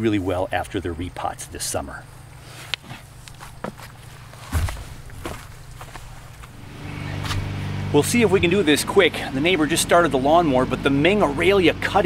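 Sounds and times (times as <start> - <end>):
knocks and shuffling: 2.0 - 7.7
lawnmower engine hum: 2.1 - 12.0.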